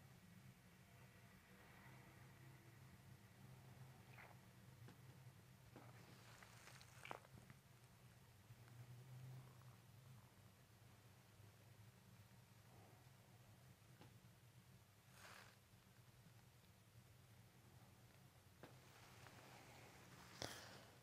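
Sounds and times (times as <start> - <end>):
low room hum: 0.0 - 21.0
soft rustle: 5.7 - 7.6, 18.6 - 21.0.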